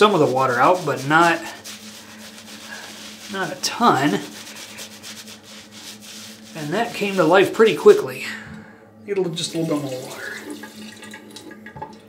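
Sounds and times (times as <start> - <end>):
shaving brush scrubbing on stubble: 0.0 - 8.2, 9.4 - 10.5.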